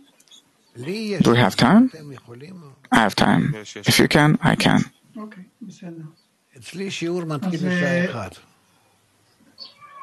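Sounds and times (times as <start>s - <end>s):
man saying a word: 0.8s - 1.2s, 6.8s - 8.3s.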